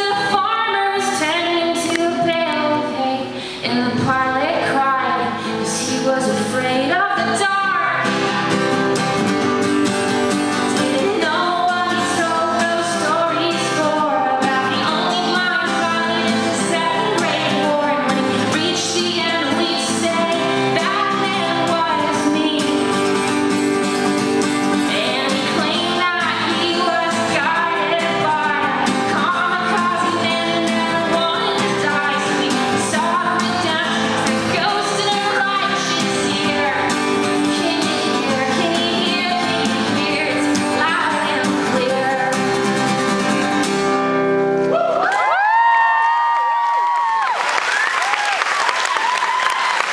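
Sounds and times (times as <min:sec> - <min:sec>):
woman singing: 0:00.0 - 0:08.6, 0:10.5 - 0:23.4, 0:24.6 - 0:43.5
acoustic guitar strumming: 0:00.0 - 0:44.7.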